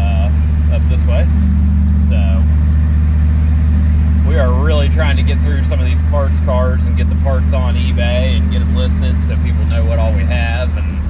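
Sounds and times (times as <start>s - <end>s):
man talking: 0.0s - 1.3s, 2.0s - 2.5s, 4.2s - 11.0s
engine and road noise drone: 0.0s - 11.0s.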